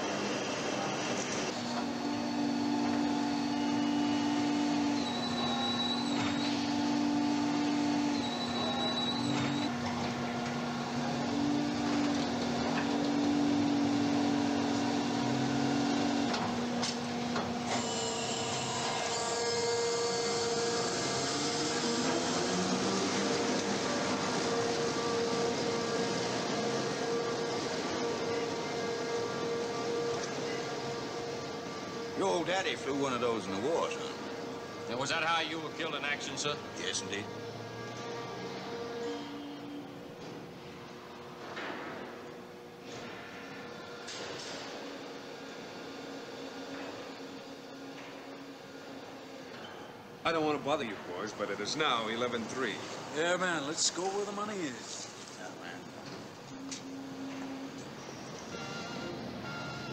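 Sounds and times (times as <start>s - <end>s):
parking lift whirring and humming: 0.0s - 59.9s
lift rising whine: 1.5s - 42.5s.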